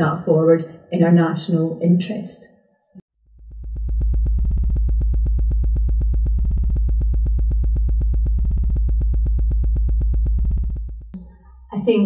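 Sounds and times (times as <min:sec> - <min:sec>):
synthesizer music: 0:04.1 - 0:11.8.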